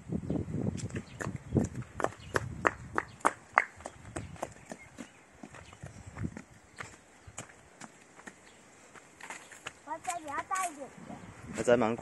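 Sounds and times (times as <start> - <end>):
footsteps on dry leaves: 5.5 - 11.0.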